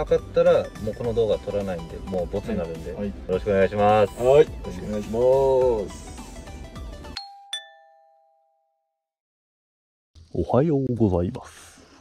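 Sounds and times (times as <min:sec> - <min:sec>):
two-note ding-dong chime: 0:07.2 - 0:08.8.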